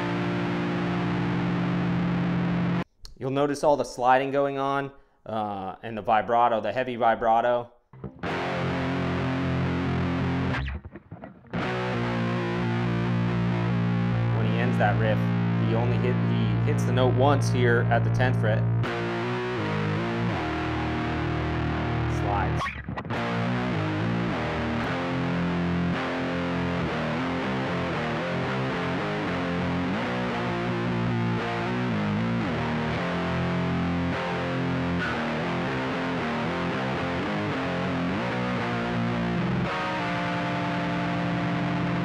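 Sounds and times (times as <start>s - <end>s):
distorted electric guitar riff: 0.0s - 2.9s, 8.0s - 42.0s.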